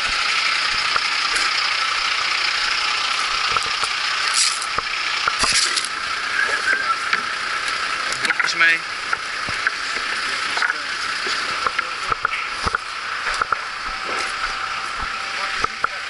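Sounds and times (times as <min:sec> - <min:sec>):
gear knocking on pavement: 0:03.3 - 0:06.0.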